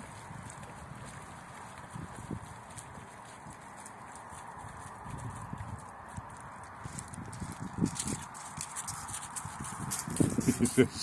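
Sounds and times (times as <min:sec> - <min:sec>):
dog paws on pebbles: 0:00.0 - 0:11.0.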